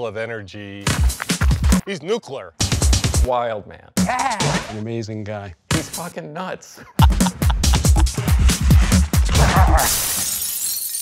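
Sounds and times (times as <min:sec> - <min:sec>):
electronic dance beat: 0:06.9 - 0:09.3.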